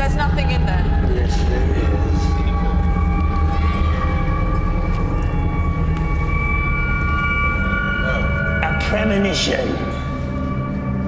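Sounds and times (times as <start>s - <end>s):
deep low rumble: 0.0s - 9.0s
eerie high drone tones: 0.0s - 11.0s.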